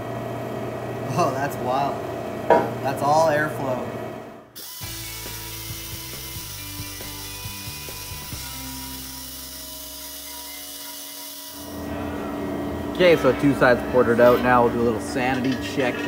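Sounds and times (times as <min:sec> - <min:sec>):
pneumatic die grinder whining: 0:04.6 - 0:11.9.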